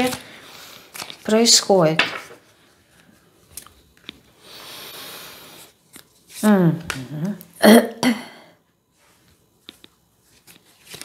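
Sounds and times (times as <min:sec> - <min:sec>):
cards rustling: 0:00.0 - 0:04.2, 0:09.6 - 0:11.0.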